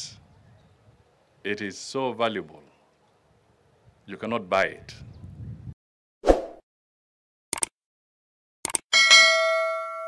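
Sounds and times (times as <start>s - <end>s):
bell ding: 8.9s - 10.0s.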